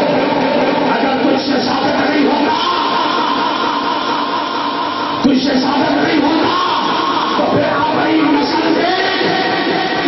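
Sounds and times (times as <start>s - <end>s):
man chanting over loudspeaker: 0.0s - 10.0s.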